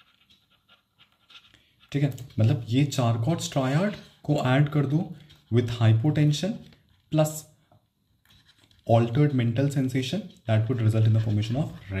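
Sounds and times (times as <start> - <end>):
man speaking: 1.9 - 7.6, 8.9 - 12.0.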